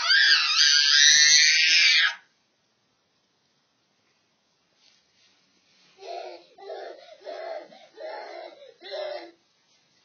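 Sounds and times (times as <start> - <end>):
toddler screaming: 0.0 - 2.3.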